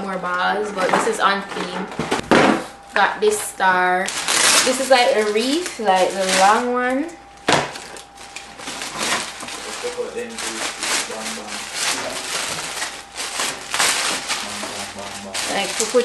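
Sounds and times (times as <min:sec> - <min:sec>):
plastic bag crinkling: 0:03.4 - 0:06.9, 0:07.5 - 0:16.0.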